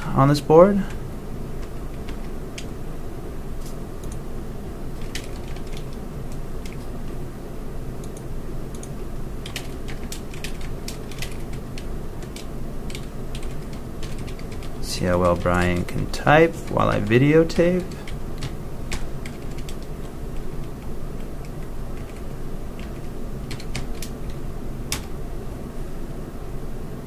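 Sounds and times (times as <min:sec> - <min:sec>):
steady low hum: 0:00.0 - 0:27.0
computer keyboard typing: 0:01.6 - 0:02.7, 0:04.0 - 0:04.2, 0:05.0 - 0:06.9, 0:08.0 - 0:25.1.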